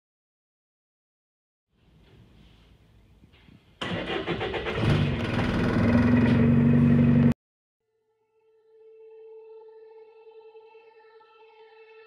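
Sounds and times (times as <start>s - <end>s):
bus diesel engine starting: 3.8s - 7.3s.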